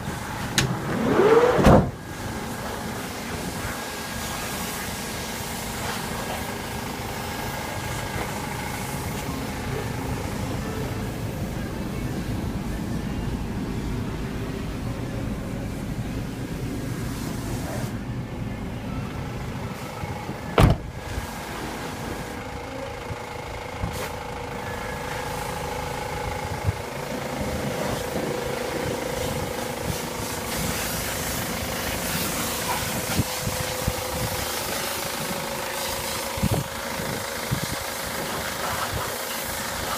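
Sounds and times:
van engine idling: 0:00.0 - 0:39.9
loud thump: 0:01.6 - 0:02.0, 0:20.6 - 0:20.9.

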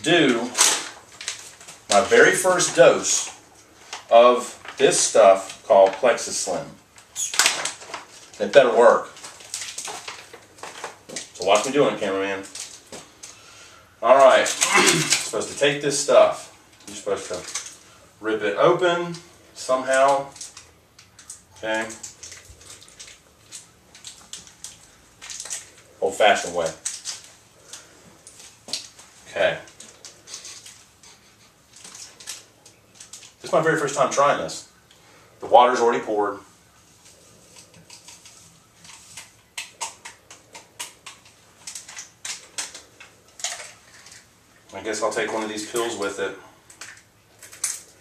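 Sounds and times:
powder packet crinkling: 0:00.1 - 0:13.4, 0:14.1 - 0:18.0, 0:18.8 - 0:34.4, 0:36.8 - 0:48.0.

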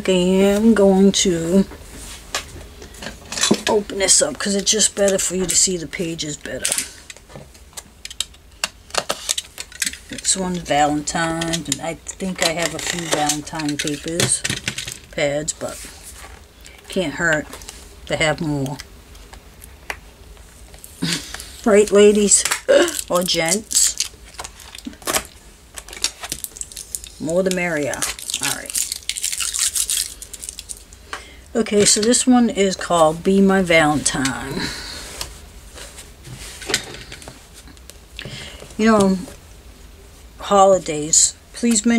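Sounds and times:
knife slitting plastic wrap: 0:27.9 - 0:30.8.

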